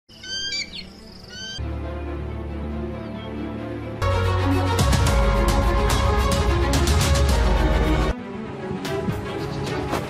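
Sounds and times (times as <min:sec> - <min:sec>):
high-pitched bird whistles: 0:00.1 - 0:01.6
music with deep bass: 0:04.0 - 0:08.1.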